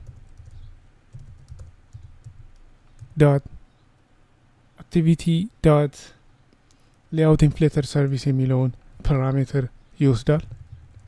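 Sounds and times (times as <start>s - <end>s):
computer keyboard keystrokes: 0.0s - 3.2s, 10.4s - 11.0s.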